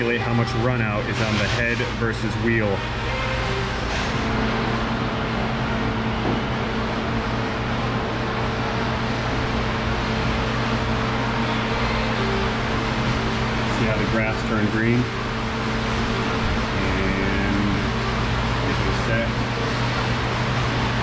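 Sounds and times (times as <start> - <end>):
fan running: 0.0 - 21.0.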